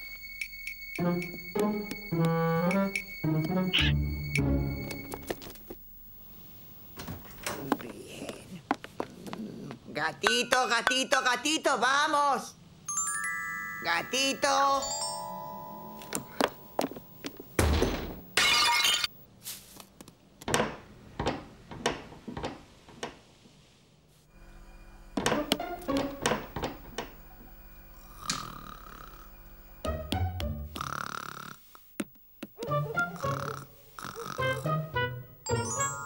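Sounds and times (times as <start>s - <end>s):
cartoon music: 1.0s - 4.7s, 34.3s - 36.0s.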